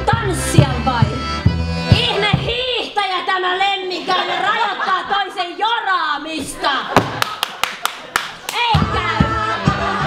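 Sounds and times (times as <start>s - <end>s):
double bass notes: 0.0s - 2.7s
hand claps: 7.0s - 8.8s
person singing: 8.6s - 10.0s.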